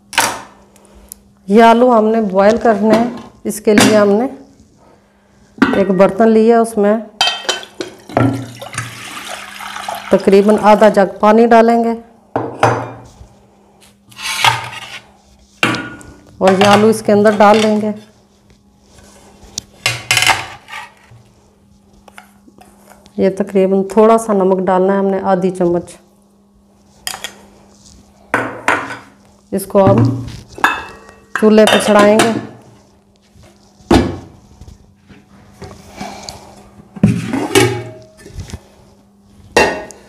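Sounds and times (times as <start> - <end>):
water pouring into pot: 8.4 - 10.3.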